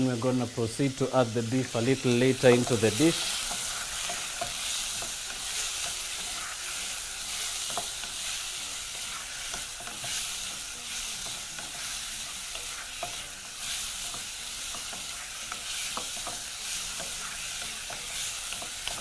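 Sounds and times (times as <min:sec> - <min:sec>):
meat sizzling in hot oil: 0:00.0 - 0:19.0
wooden spoon stirring: 0:01.5 - 0:19.0.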